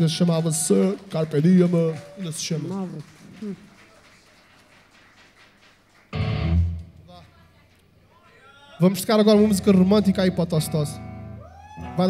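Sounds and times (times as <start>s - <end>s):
electric guitar and bass chord: 6.2s - 7.0s.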